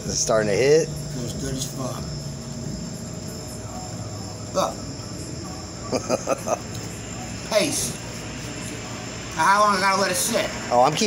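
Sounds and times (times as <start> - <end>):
high-pitched whine: 0.0 - 11.0
steady background hum: 0.0 - 11.0.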